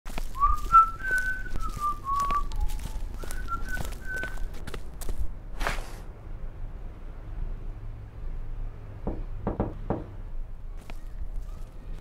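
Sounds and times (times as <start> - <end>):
footsteps on concrete: 0.1 - 6.0
person whistling a tune: 0.4 - 4.4.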